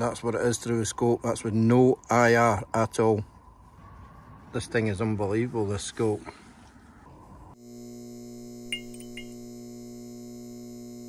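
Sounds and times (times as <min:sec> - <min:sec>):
neon sign electrical hum: 0:07.5 - 0:11.0.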